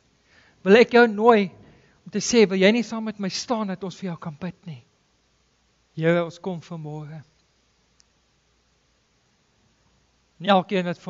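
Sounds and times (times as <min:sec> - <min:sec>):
man's voice: 0:00.6 - 0:04.9, 0:06.0 - 0:07.3, 0:10.4 - 0:11.0
faint click: 0:07.3 - 0:08.2.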